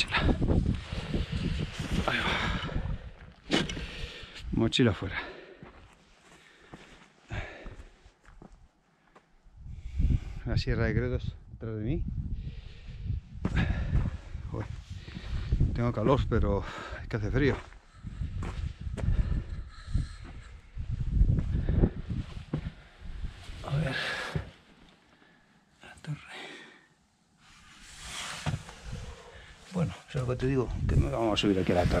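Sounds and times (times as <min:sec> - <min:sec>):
wind buffeting microphone: 0:00.0 - 0:04.6, 0:09.6 - 0:23.6, 0:30.4 - 0:32.0
man speaking: 0:29.7 - 0:32.0.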